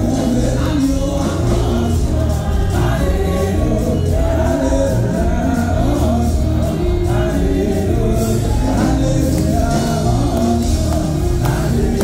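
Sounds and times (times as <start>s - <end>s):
group singing gospel music: 0.0s - 12.0s
heavy bass accompaniment: 0.0s - 12.0s.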